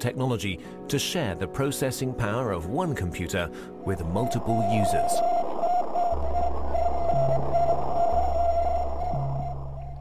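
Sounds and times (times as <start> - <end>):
wavering high tone: 3.8 - 10.0.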